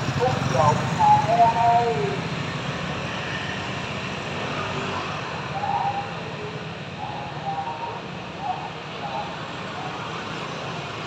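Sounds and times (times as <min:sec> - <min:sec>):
motorbike engines hum: 0:00.0 - 0:11.0
road noise: 0:00.0 - 0:11.0.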